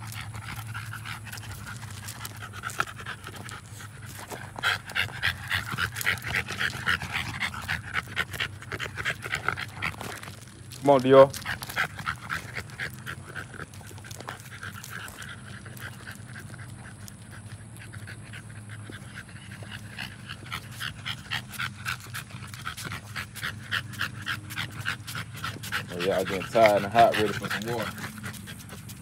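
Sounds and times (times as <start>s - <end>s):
dogs panting fast: 0.0s - 29.0s.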